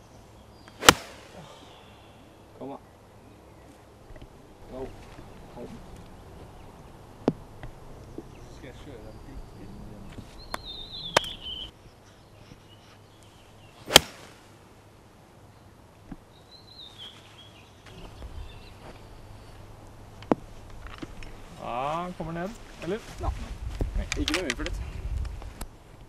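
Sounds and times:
golf club striking ball: 0.7s - 1.4s, 13.9s - 14.3s.

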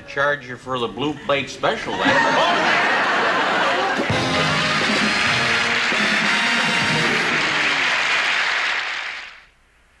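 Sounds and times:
studio audience applauding: 2.4s - 9.5s.

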